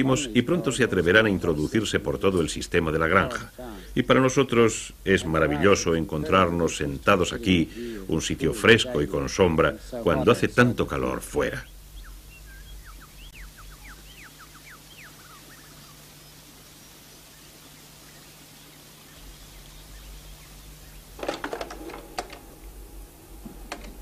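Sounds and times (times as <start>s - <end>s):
low hum: 0.0s - 24.0s
small bird chirping: 11.4s - 21.2s.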